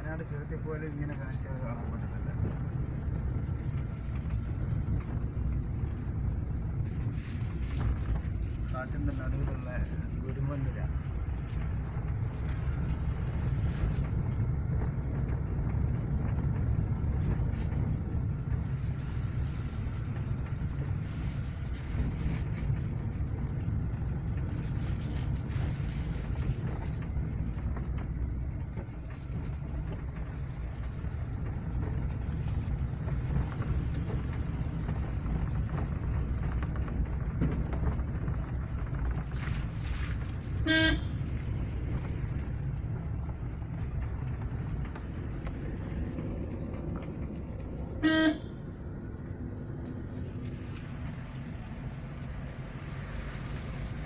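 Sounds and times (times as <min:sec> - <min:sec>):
car engine and tyre rumble: 0:00.0 - 0:54.0
vehicle horn toot: 0:40.6 - 0:41.2, 0:48.0 - 0:48.5.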